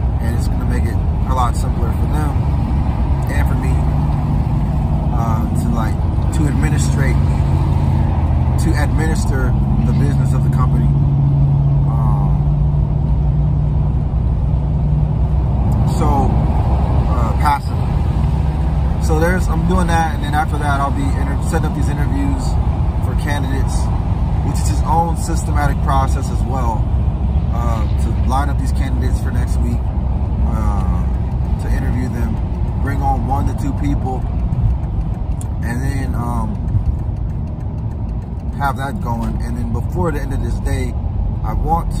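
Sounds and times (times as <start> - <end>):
car engine and road noise: 0.0 - 42.0
person talking: 38.5 - 42.0.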